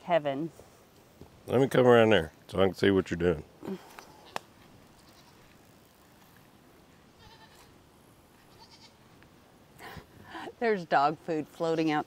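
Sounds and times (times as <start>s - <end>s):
faint goat bleat: 5.0s - 5.5s, 7.2s - 7.7s, 8.4s - 9.0s.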